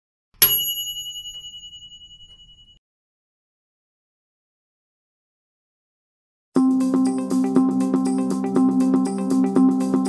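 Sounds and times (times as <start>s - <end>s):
bright bell ding: 0.4s - 2.8s.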